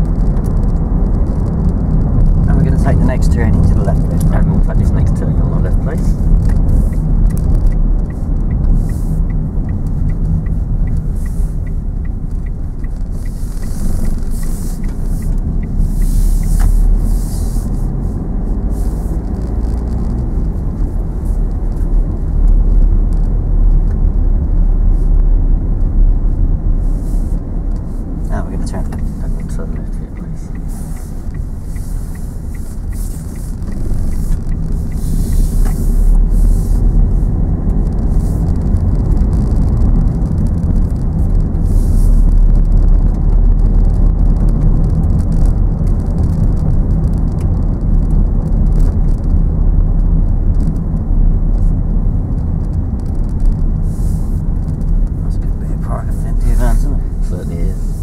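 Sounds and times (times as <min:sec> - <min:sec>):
car engine and tyres on wet road: 0:00.0 - 0:58.0.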